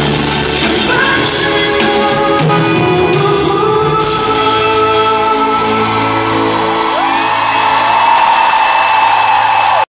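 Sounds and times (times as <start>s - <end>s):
crowd whooping and cheering: 5.8s - 9.9s.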